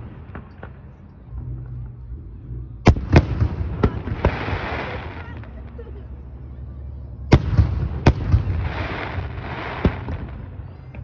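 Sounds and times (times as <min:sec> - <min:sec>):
firework bangs: 0:02.9 - 0:05.8, 0:07.3 - 0:11.0
firework sparks crackling: 0:02.9 - 0:05.9, 0:07.3 - 0:11.0.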